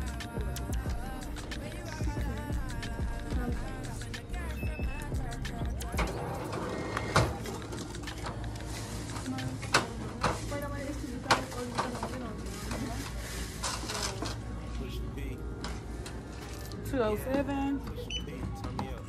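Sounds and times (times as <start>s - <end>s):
indistinct background voices: 0.0s - 19.0s.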